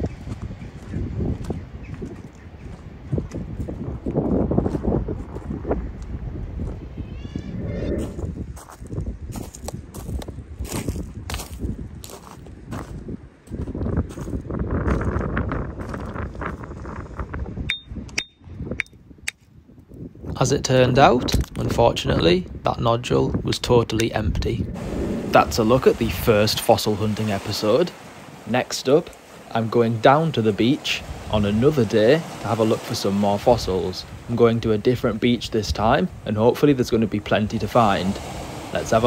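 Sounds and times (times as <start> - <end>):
wind noise: 0.0 - 39.0.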